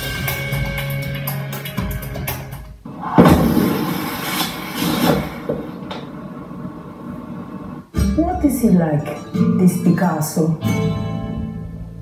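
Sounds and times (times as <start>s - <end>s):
drum-backed credits music: 0.0s - 4.4s, 7.9s - 9.3s
loud cinematic hit: 2.9s - 4.5s.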